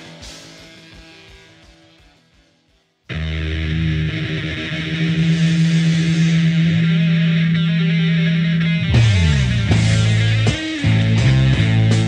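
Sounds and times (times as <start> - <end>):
sustained guitar: 0.0 - 12.0
droning low note: 3.1 - 12.0.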